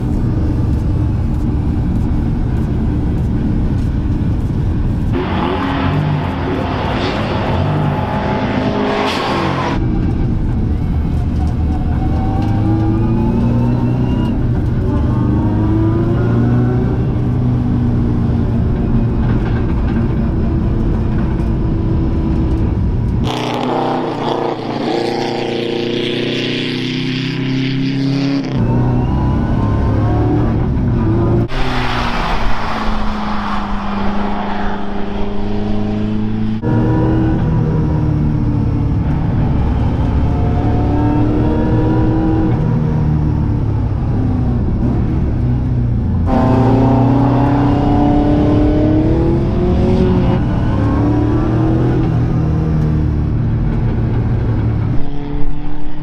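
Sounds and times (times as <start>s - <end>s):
car engine revving hard: 23.2s - 28.4s, 46.3s - 52.1s.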